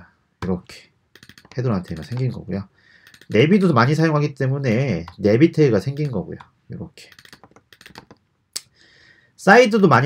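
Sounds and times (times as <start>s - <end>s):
computer keyboard typing: 1.1s - 2.4s, 3.0s - 3.7s, 4.6s - 8.2s.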